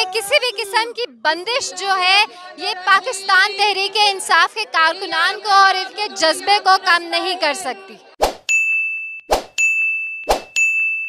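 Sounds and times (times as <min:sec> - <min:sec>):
bright bell-like ding: 0:08.5 - 0:11.0.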